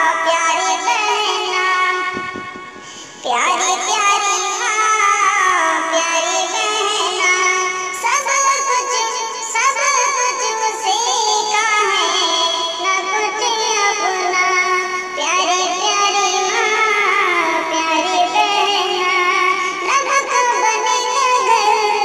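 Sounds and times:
person singing devotional song: 0.0s - 22.0s.

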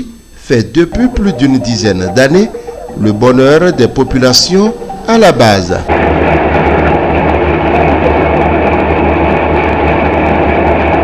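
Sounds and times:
low motor hum: 5.8s - 11.0s.

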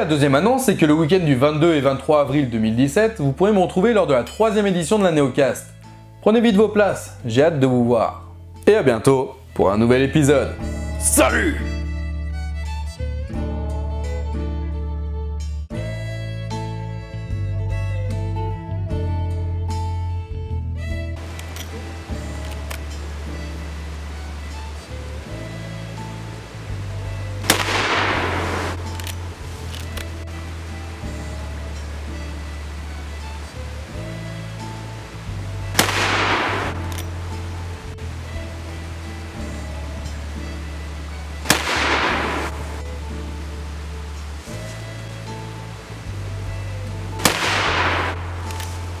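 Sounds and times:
background music with bass line: 0.0s - 49.0s
rifle shots with echo: 27.4s - 28.8s, 35.8s - 37.0s, 41.5s - 42.5s, 47.2s - 48.8s.

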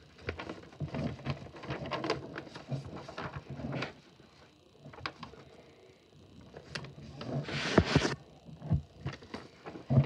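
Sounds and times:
paper crackling: 0.2s - 4.0s.

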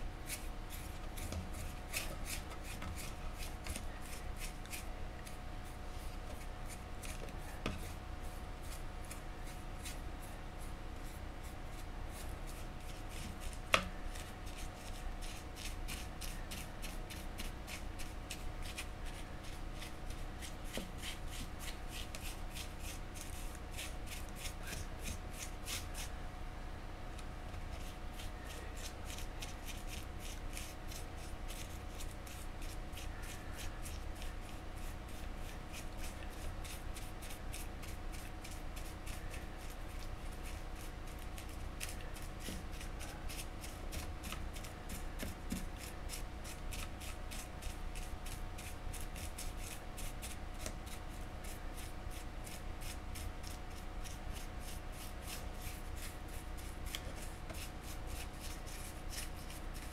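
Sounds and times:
paintbrush strokes: 0.0s - 26.2s, 27.5s - 59.9s
faint steady hum: 0.0s - 59.9s.

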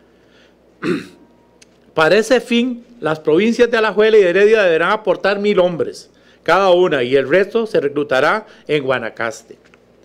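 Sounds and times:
man clearing his throat: 0.8s - 1.3s.

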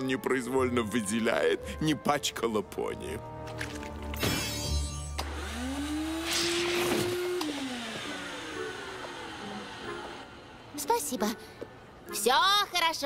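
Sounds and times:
vacuum cleaner motor whine: 5.2s - 10.9s.

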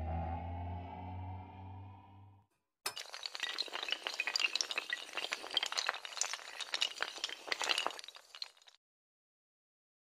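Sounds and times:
dominoes toppling clatter: 2.9s - 8.8s.

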